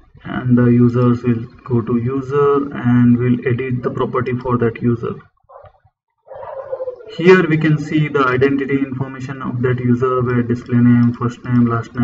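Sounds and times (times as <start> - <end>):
man narrating: 0.2 - 5.2, 7.0 - 12.0.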